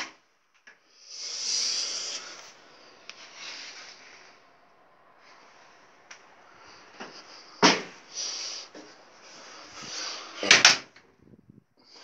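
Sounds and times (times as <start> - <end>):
steady hiss: 0.7 - 10.7.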